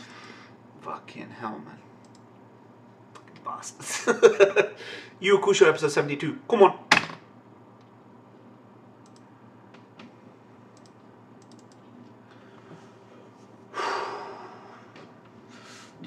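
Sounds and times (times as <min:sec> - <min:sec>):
faint clicks: 0:02.0 - 0:02.2, 0:09.0 - 0:10.1, 0:10.8 - 0:12.2.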